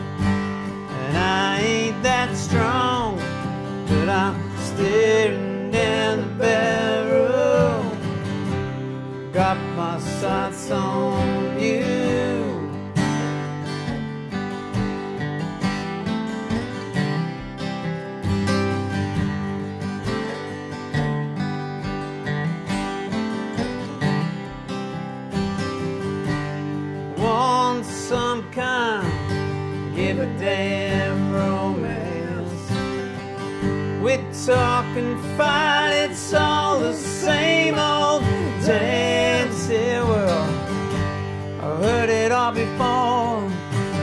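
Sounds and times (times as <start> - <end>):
acoustic guitars playing: 0.0 - 44.0
person singing: 0.9 - 8.2, 9.3 - 13.3, 29.9 - 33.2, 34.0 - 40.8, 41.6 - 44.0.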